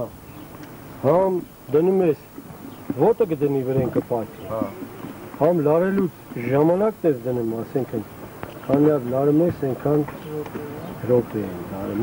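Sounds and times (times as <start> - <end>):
man talking: 2.9 - 4.8, 5.4 - 8.1, 8.7 - 10.2, 11.0 - 12.0.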